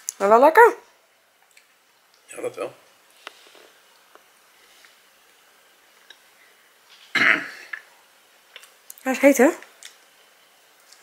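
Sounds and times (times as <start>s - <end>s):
man coughing: 7.2s - 7.6s.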